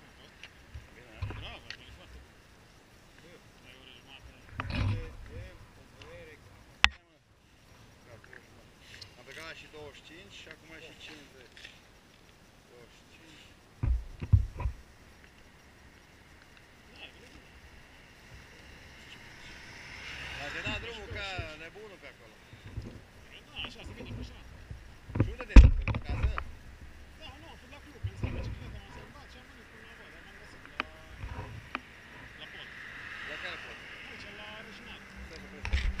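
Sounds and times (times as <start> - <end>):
car road noise: 0.0 - 6.8, 13.8 - 36.0
street ambience: 0.0 - 36.0.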